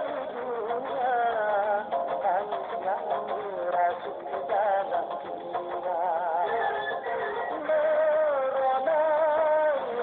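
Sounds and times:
backing music: 0.0 - 10.0
person singing with vibrato: 0.0 - 10.0.

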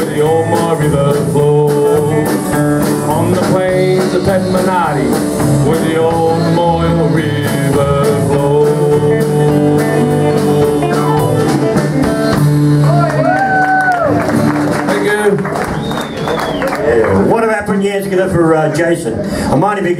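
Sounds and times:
live country band playing: 0.0 - 19.9.

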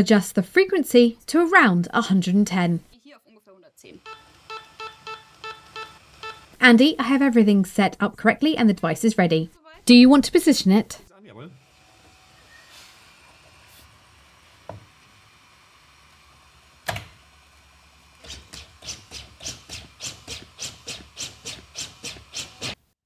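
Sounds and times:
mechanical compression strokes: 4.0 - 6.6, 18.2 - 23.0.

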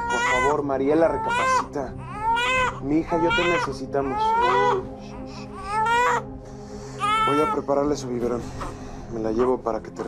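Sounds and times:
baby crying: 0.0 - 6.3, 7.0 - 7.8
soft background music: 0.0 - 10.0.

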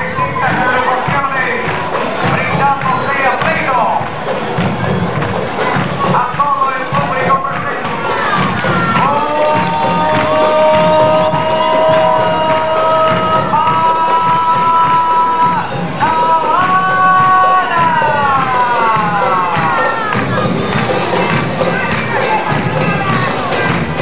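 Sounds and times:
carnival music: 0.0 - 24.0
crowd cheering: 0.0 - 24.0
pulsing drum beat: 0.0 - 24.0
voices: 0.0 - 24.0.

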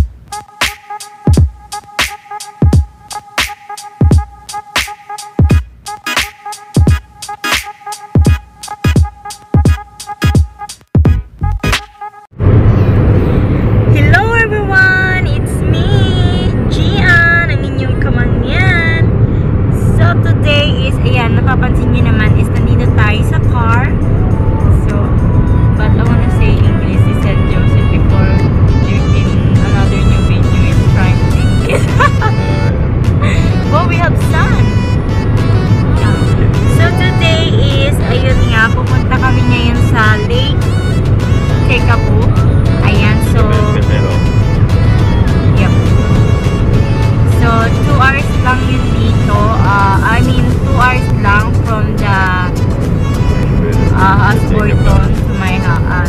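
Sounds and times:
music playing in car: 0.0 - 13.2, 14.0 - 19.0, 19.6 - 56.0
car road and engine rumble: 0.0 - 56.0
woman singing along: 36.0 - 40.6, 53.9 - 56.0.

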